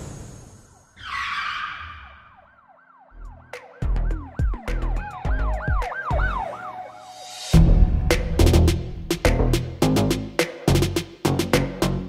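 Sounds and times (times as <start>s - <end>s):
warbling siren-like tone: 0.7s - 7.5s
heavy bass thumps: 7.6s - 11.7s.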